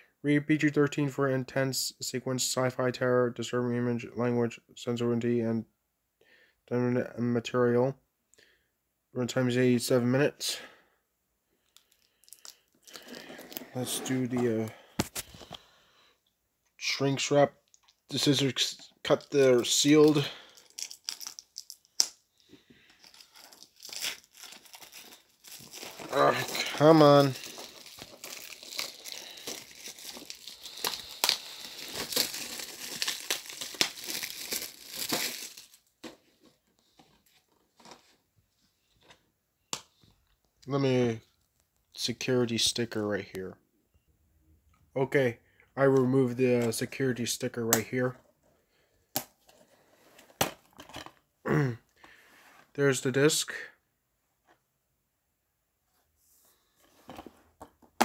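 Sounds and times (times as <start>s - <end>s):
shrink wrap crinkling: 19.1s - 22.1s, 22.8s - 35.9s
plastic wrap ripping: 19.6s - 22.0s, 23.0s - 35.8s.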